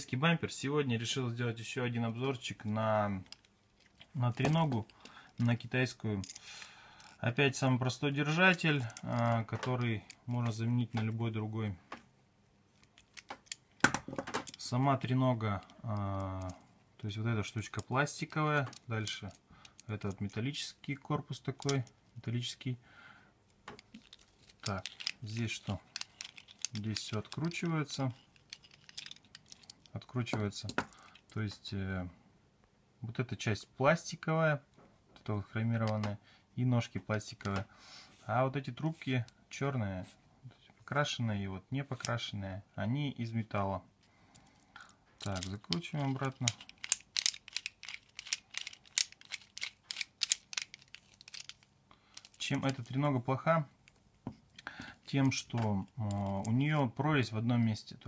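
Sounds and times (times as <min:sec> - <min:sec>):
tripod parts clicking and knocking: 0:12.8 - 0:14.7, 0:23.6 - 0:31.3, 0:45.2 - 0:53.0.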